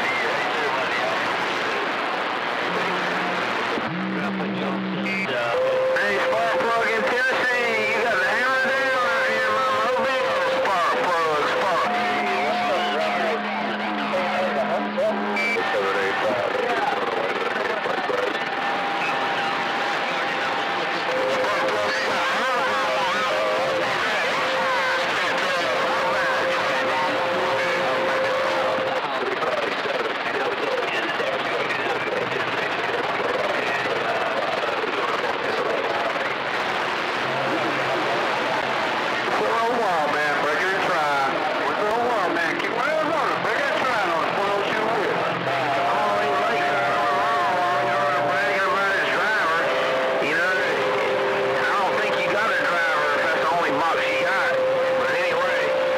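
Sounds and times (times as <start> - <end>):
garbled voices over radio: 0.0 - 55.9
radio static: 0.0 - 55.9.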